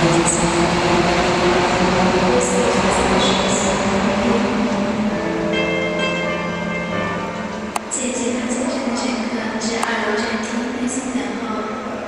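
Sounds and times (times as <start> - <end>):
steady musical tones: 0.0 - 9.8
train rushing with low hum: 0.0 - 9.8.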